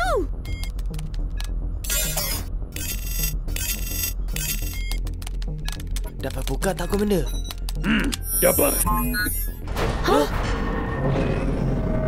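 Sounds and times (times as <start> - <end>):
short electronic beeps: 8.3 - 9.6.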